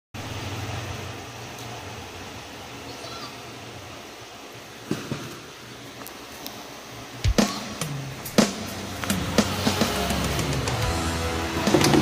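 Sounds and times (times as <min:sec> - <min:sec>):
even hiss: 0:00.2 - 0:12.0.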